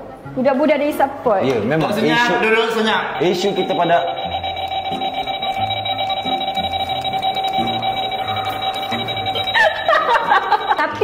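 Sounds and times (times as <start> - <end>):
pulsing electronic alarm tone: 2.6 - 11.0.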